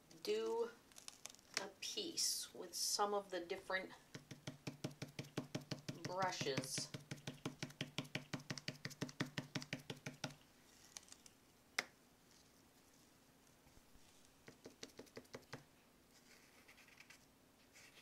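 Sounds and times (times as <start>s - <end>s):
paintbrush tapping on paper: 4.1s - 10.4s, 14.4s - 15.6s.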